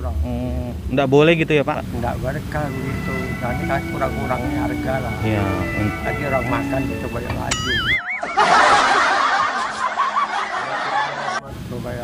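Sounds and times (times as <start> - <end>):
people laughing: 7.8 - 11.4.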